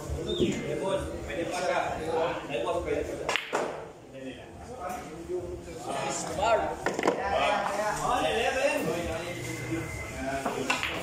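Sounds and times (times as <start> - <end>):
men talking: 0.0 - 3.4, 4.0 - 11.0.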